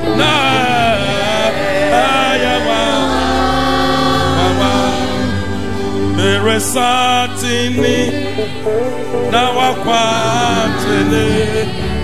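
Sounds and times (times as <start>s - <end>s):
church choir singing gospel: 0.0s - 12.0s
low bass accompaniment: 0.0s - 12.0s.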